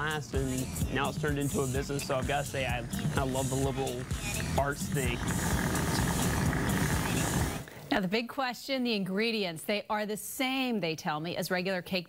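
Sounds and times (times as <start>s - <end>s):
low rumbling noise: 2.7s - 7.7s.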